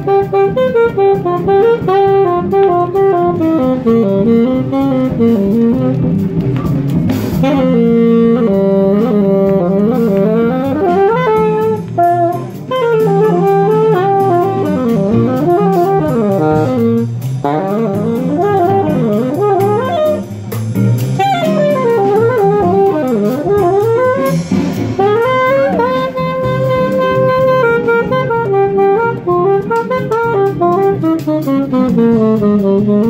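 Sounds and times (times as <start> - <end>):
jazz rhythm section: 0.0 - 33.0
lead melody with pitch bends: 0.0 - 33.0.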